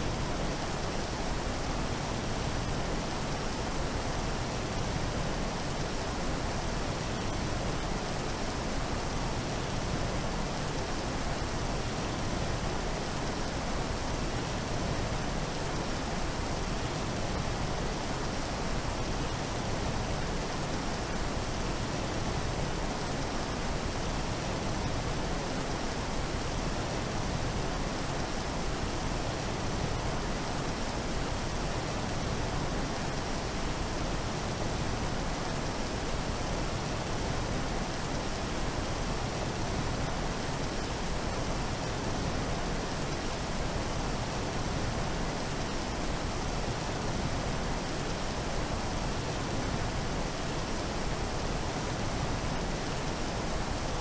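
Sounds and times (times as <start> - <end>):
steady hiss of noise: 0.0 - 54.0.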